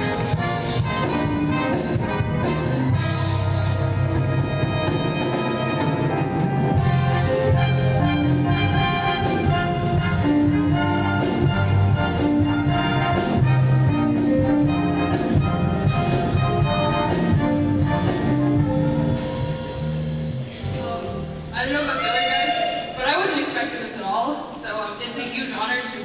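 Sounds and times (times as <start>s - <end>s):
orchestra music led by brass: 0.0s - 21.8s.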